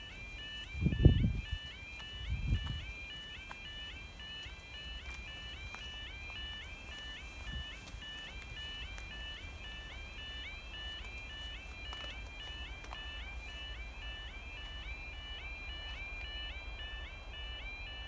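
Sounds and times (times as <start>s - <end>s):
warbling crossing alarm: 0.0s - 18.0s.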